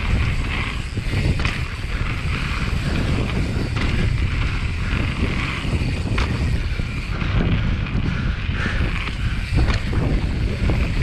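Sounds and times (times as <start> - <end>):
bike tyres rumbling on dirt: 0.0 - 11.0
wind buffeting microphone: 0.0 - 11.0
sharp knocks from bike: 9.6 - 10.0.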